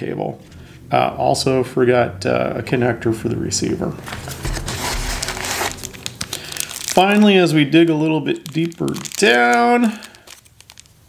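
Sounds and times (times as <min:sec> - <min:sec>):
plastic packaging crinkling: 0:04.0 - 0:11.0.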